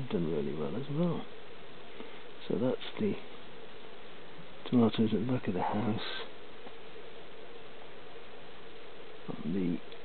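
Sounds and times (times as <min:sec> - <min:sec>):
faint even hum: 0:00.0 - 0:10.0.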